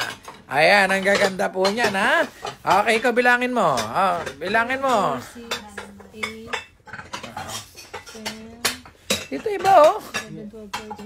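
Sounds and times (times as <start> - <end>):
ceramic plates clinking: 0.0 - 11.0.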